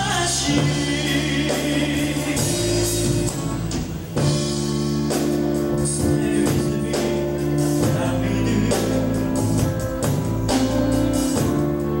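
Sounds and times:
live band with singing: 0.0 - 12.0.

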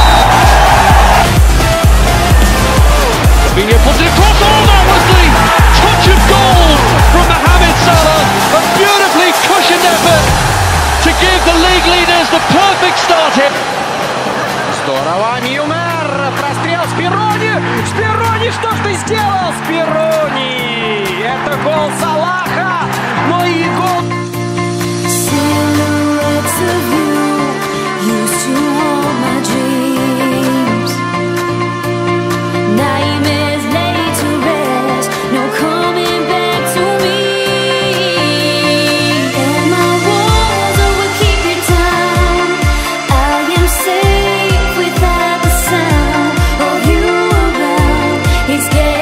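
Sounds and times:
electronic music with steady beat: 0.0 - 29.5, 34.5 - 49.0
voice over music: 2.0 - 13.6.

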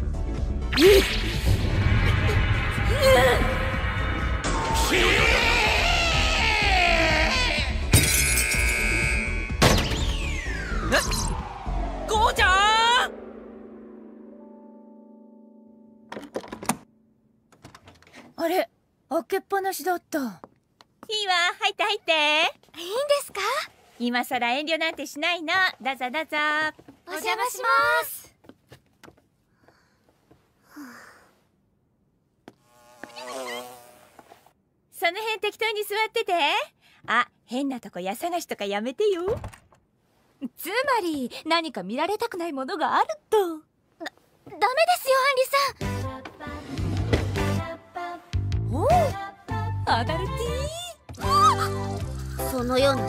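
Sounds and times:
dramatic film music: 0.0 - 16.0
sudden crash: 0.8 - 4.9, 8.0 - 14.4
woman screaming: 2.2 - 3.9, 4.8 - 7.8, 51.2 - 52.0
steady high tone: 8.1 - 16.0
beetle wings buzzing: 32.5 - 34.3.

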